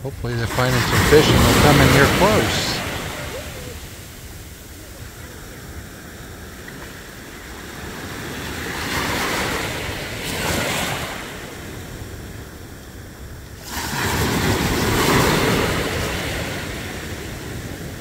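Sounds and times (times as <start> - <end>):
small waves washing ashore: 0.0 - 18.0.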